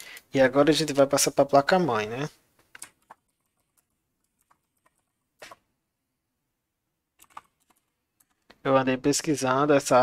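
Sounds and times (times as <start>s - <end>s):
computer keyboard keystrokes: 2.6s - 5.6s, 7.2s - 8.6s.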